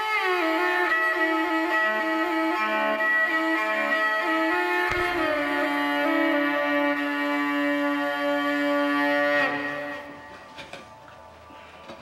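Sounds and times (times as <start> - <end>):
bowed fiddle held note: 3.6 - 10.4.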